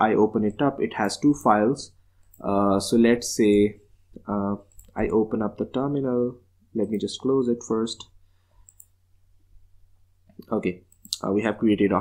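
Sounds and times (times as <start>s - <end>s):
computer mouse clicks: 8.6s - 9.0s.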